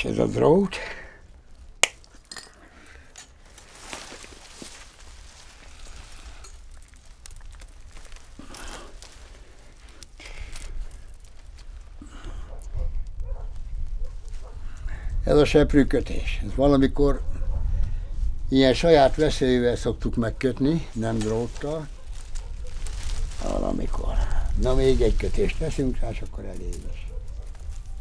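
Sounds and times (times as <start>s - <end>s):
twigs rustling and creaking: 0.0s - 28.0s
wire scraping and clinking: 1.8s - 4.8s, 5.9s - 9.1s.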